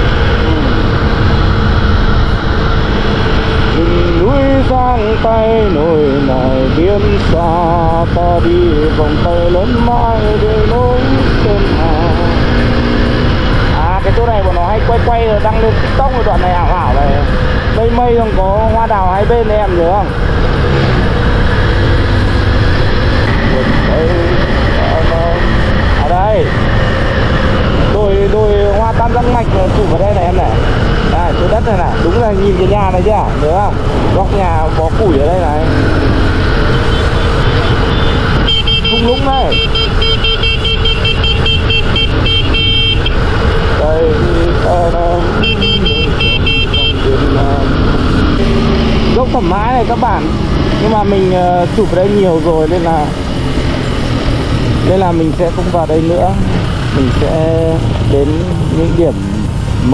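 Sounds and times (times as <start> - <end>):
indistinct voices: 0.0 - 2.0, 2.8 - 39.8, 43.4 - 59.9
motorcycle engine: 0.0 - 59.9
wind rush over microphone: 0.0 - 59.9.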